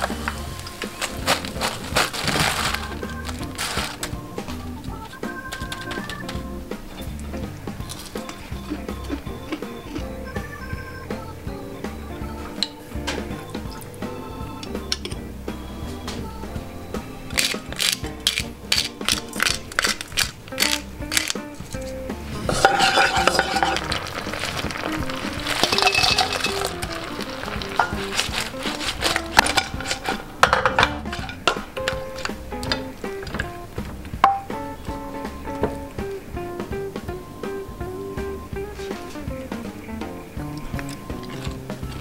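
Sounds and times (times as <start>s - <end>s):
light background music: 0.0s - 42.0s
food sizzling in frying pan: 22.4s - 32.3s
metal spoon clinking on pan: 22.5s - 23.9s, 25.6s - 26.8s.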